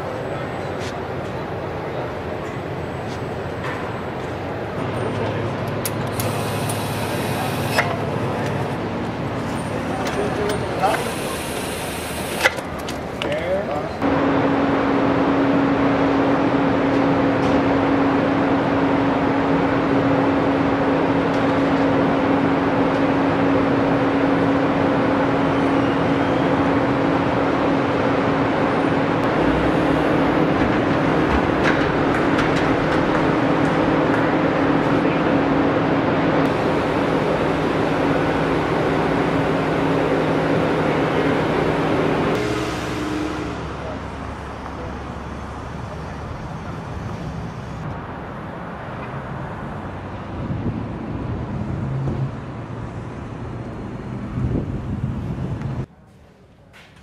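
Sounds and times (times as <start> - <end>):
machinery hum: 0.0 - 49.9
loud steady drone: 3.6 - 12.5, 13.9 - 48.7.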